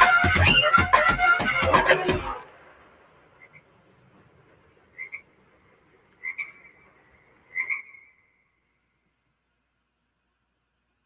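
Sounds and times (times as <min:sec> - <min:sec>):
faint steady hiss: 0:02.3 - 0:11.0.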